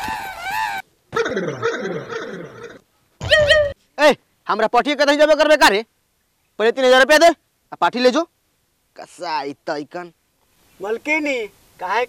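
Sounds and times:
animal cries with sliding pitch: 0.0 - 3.8.

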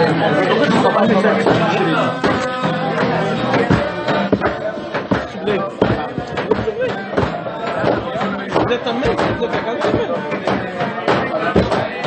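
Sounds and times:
men singing wordless melody: 0.4 - 12.0
claps and knocks on the beat: 2.2 - 12.0.

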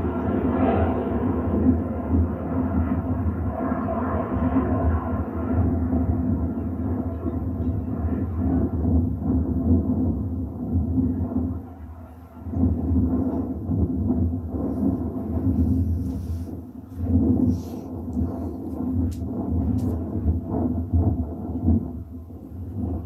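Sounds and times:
distant jet engine rumble: 0.0 - 23.0.

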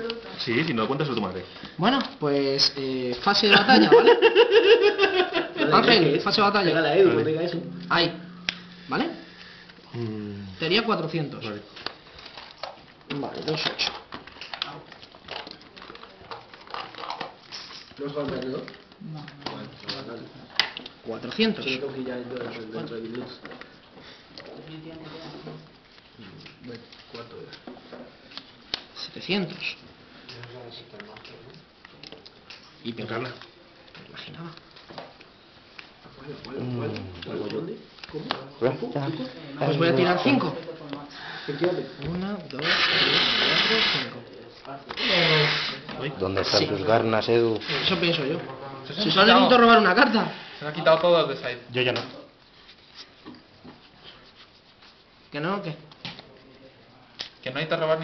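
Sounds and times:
cards tapping and rustling: 0.0 - 3.3, 11.4 - 21.0.

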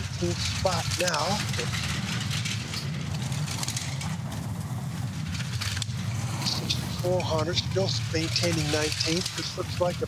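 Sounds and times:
bobsleigh runners rumbling on ice: 0.0 - 10.0.

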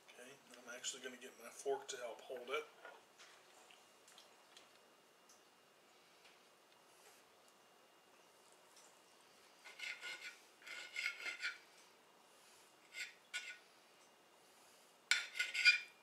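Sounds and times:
knife scraping against plate: 9.6 - 11.6, 12.8 - 13.6, 15.1 - 16.0.

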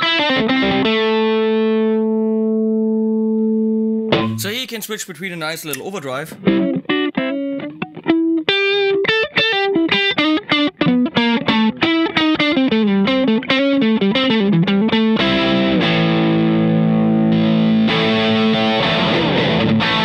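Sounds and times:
overdriven electric guitar: 0.0 - 4.6, 6.3 - 20.0.

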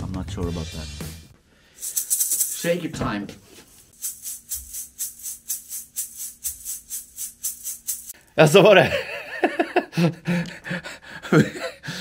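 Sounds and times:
maracas shaken: 1.7 - 3.0, 3.6 - 8.5.

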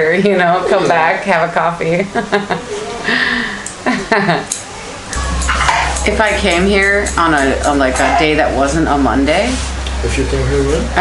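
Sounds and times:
people talking and laughing: 0.0 - 8.8
low steady hum: 0.0 - 11.0.

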